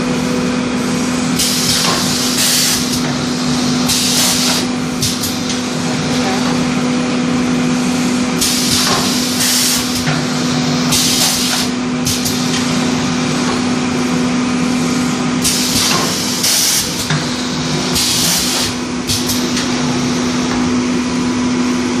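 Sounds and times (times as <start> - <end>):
steady machine hum: 0.0 - 22.0.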